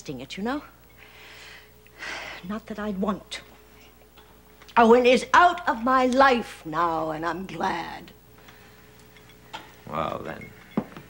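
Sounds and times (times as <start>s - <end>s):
steady hum: 0.0s - 11.0s
man speaking: 9.9s - 10.4s.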